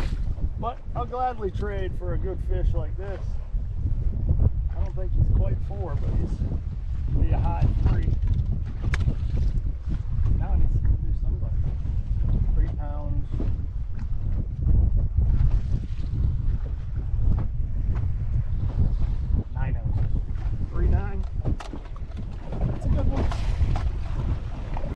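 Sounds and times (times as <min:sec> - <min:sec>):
wind buffeting microphone: 0:00.0 - 0:24.9.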